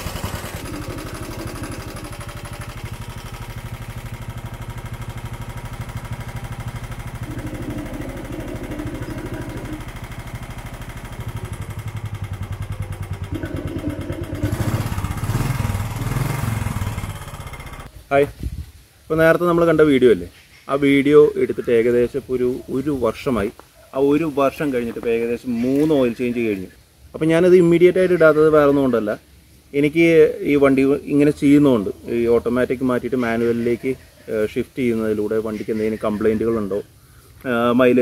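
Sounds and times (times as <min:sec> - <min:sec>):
motorcycle engine idling: 0:00.0 - 0:17.9.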